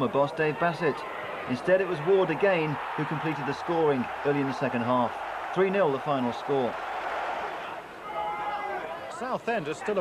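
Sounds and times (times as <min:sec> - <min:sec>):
stadium crowd roar: 0:00.0 - 0:10.0.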